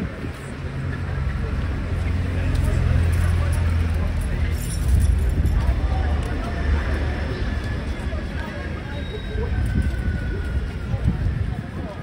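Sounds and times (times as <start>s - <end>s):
crowd voices: 0.0s - 12.0s
horse bridle jingling: 3.1s - 5.8s.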